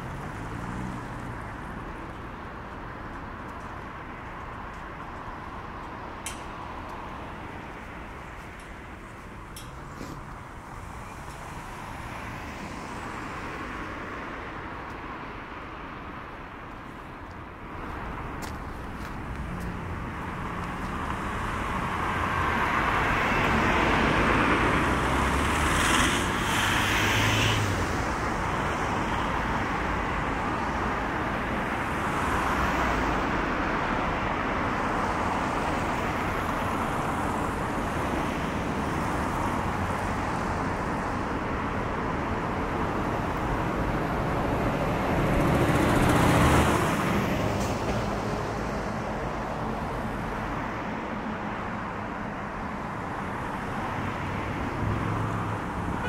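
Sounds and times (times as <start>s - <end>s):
cars passing close by: 0.0s - 56.0s
road traffic: 0.0s - 56.0s.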